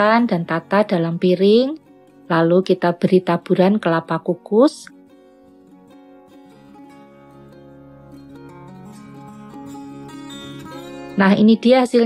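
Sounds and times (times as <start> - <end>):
soft plucked string music: 0.0 - 12.0.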